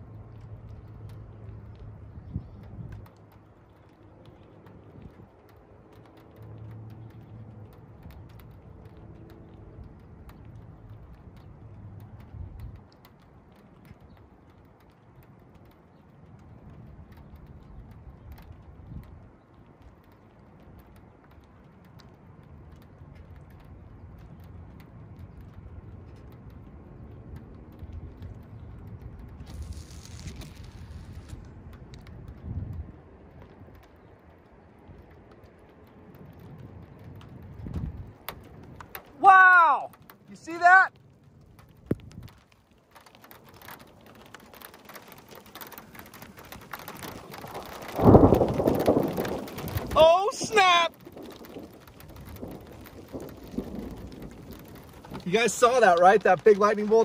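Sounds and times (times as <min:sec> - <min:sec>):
light ticks: 0:00.0 - 0:57.0
low thunder rumbling: 0:22.1 - 0:42.5, 0:43.3 - 0:57.0.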